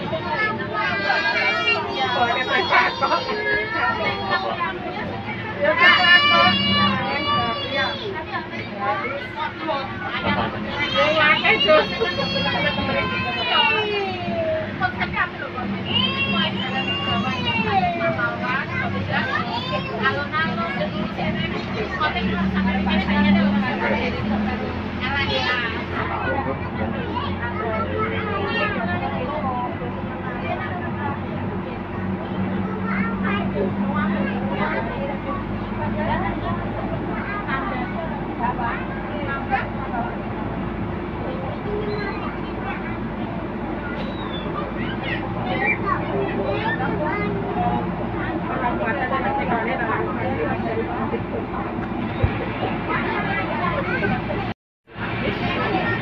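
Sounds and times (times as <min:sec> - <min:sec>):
bus engine humming: 0:00.0 - 0:56.0
people talking indistinctly: 0:00.0 - 0:56.0
people's voices: 0:00.0 - 0:56.0
road rumble: 0:00.0 - 0:56.0.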